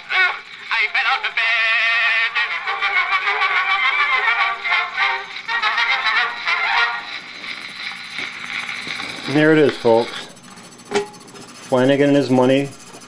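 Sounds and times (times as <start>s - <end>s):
music from cylinder phonograph: 0.0s - 13.0s.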